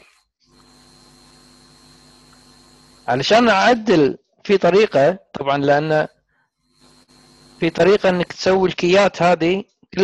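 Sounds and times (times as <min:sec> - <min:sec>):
thin high whine: 0:00.0 - 0:09.4
electrical hum and hiss: 0:00.0 - 0:10.0.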